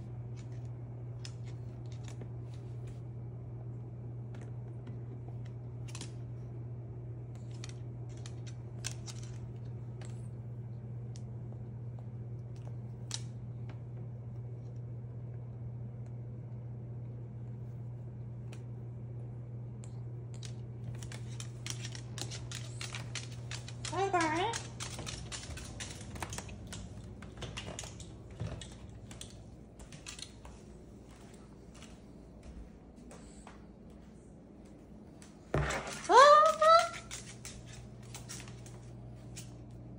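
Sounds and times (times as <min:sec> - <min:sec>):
steady low hum: 0:00.0 - 0:39.9
bird claws clicking on wood floor: 0:20.3 - 0:30.6.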